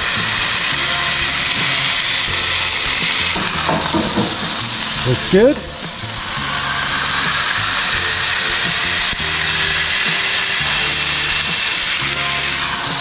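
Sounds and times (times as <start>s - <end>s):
background music low chords: 0.0s - 13.0s
burger patties sizzling on griddle: 0.0s - 13.0s.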